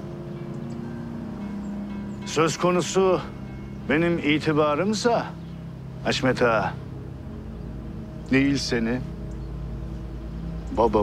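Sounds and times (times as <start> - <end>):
low held notes of background music: 0.0 - 11.0.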